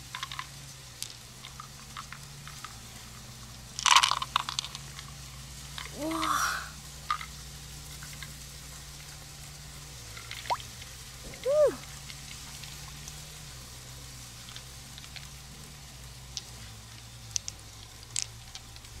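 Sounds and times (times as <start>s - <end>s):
faint clicks: 16.3s - 19.0s.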